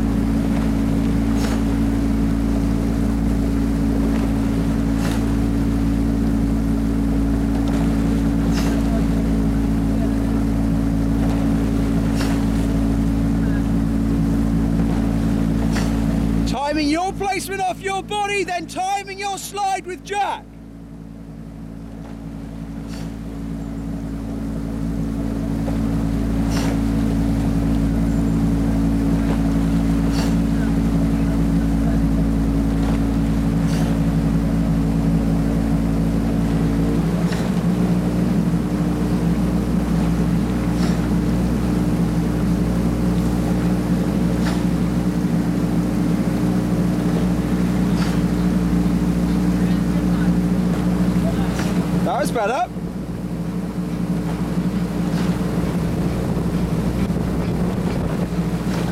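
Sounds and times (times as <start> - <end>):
outboard motor running: 0.0 - 58.9.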